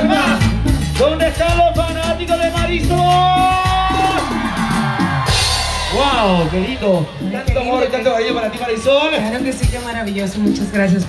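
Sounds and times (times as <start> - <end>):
live band playing: 0.0 - 11.0
steady bass line: 0.0 - 11.0.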